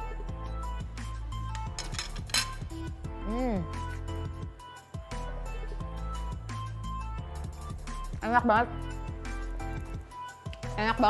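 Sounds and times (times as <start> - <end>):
background music: 0.0 - 11.0
metal spoon clinking on dish: 1.6 - 2.6.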